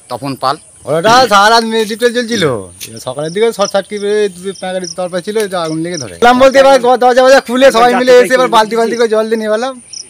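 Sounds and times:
man speaking: 0.0s - 9.9s.

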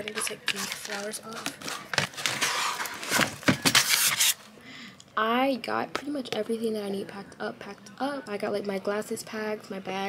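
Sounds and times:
plastic wrapping crinkling: 0.0s - 4.4s.

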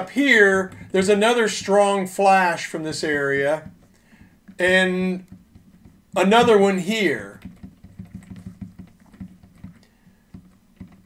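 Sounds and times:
faint keyboard clicks: 7.3s - 11.0s.

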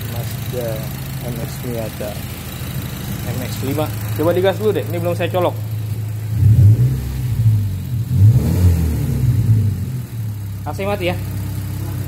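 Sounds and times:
car engine revving: 0.0s - 12.0s.

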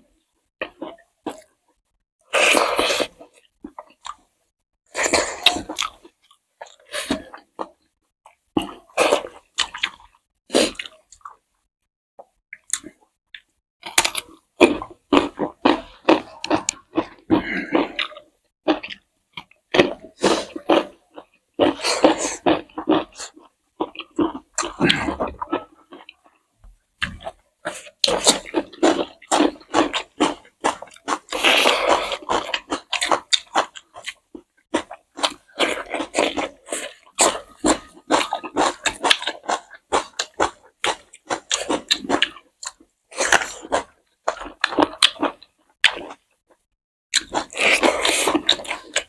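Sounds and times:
wet chewing and lip smacking: 27.0s - 46.2s.

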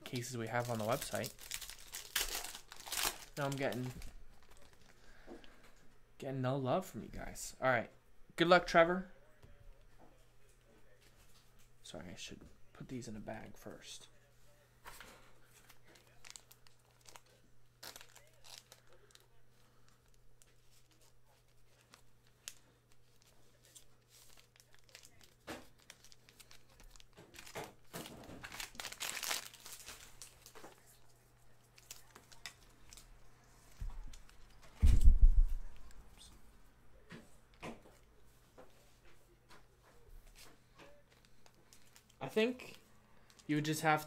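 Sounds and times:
plastic bag crinkling: 0.0s - 4.9s, 15.9s - 31.0s, 41.0s - 43.6s.

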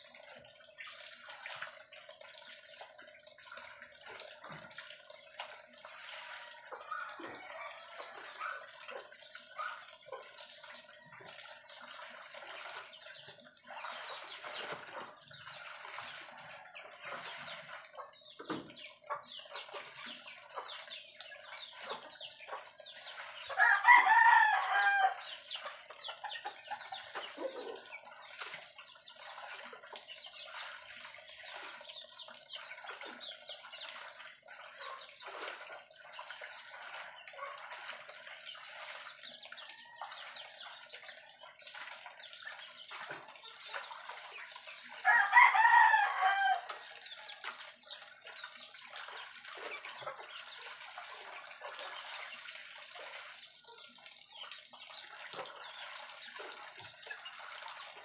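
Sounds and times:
rooster crowing: 23.6s - 25.2s, 45.0s - 46.7s.

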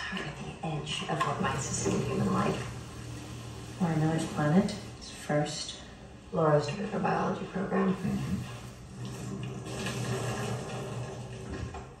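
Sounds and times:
film soundtrack ambience hum: 0.0s - 11.9s.

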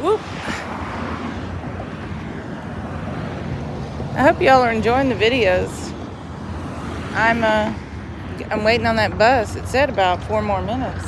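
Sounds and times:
low rumble of passing cars: 0.0s - 11.0s.

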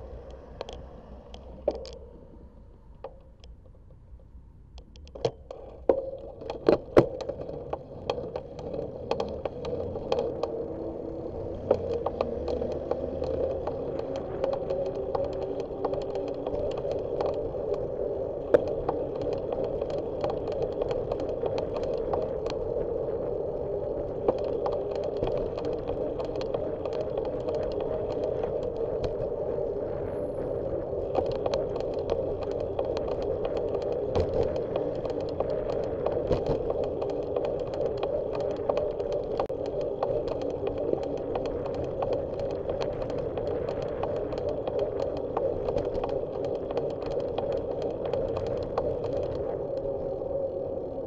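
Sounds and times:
bicycle tyres humming on asphalt: 0.0s - 51.0s
bike rattles and clicks: 4.8s - 51.0s
small rattling clicks: 30.6s - 51.0s.

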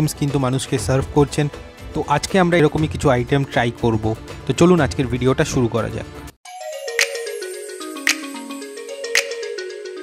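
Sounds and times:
melody of short stepping notes: 6.5s - 10.0s
sharp percussive hit: 8.0s - 8.5s.

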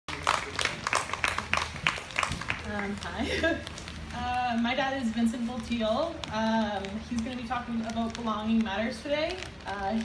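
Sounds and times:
audience clapping: 0.1s - 4.6s.

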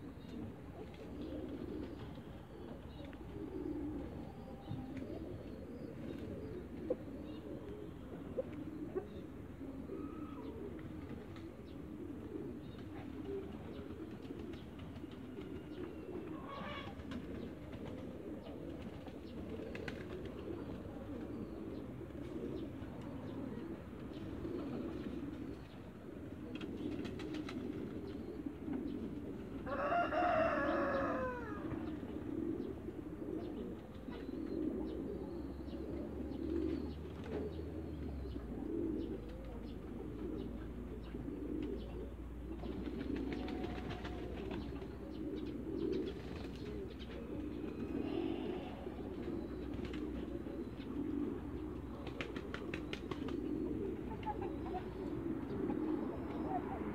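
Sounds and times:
pigeons cooing: 0.0s - 56.9s.

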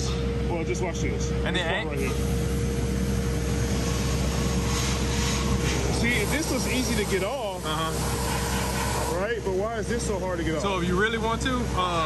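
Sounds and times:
constant machine hum: 0.0s - 12.0s
sandblast nozzle hissing: 2.0s - 9.6s.

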